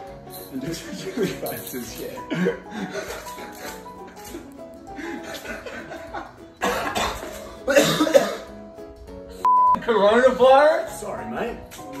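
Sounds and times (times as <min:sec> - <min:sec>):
background music: 0:00.0 - 0:12.0
man coughing hard: 0:02.3 - 0:03.1, 0:06.6 - 0:08.5.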